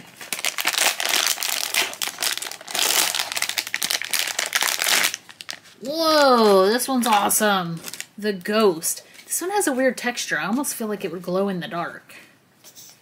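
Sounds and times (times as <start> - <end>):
foil bag crinkling: 0.0 - 8.2.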